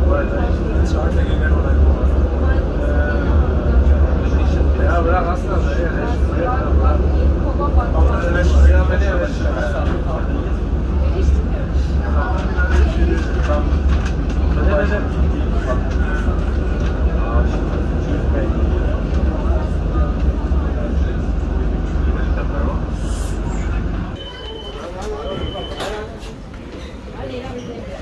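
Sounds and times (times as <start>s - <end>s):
passengers chatting: 0.0s - 28.0s
tram running rumble: 0.0s - 28.0s.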